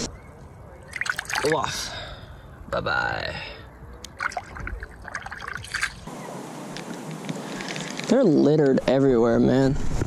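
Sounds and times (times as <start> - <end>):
water splashing and dripping: 0.9 - 1.7, 4.0 - 6.1.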